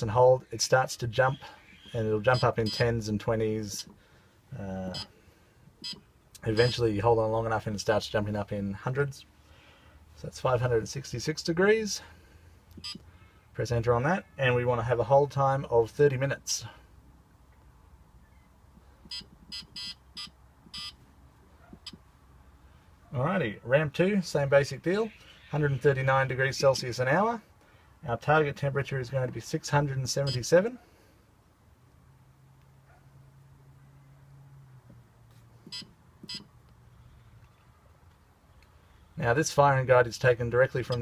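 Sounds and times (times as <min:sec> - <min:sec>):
keypad beeping: 0:02.3 - 0:02.8, 0:12.8 - 0:13.0, 0:19.1 - 0:21.0, 0:35.7 - 0:36.5.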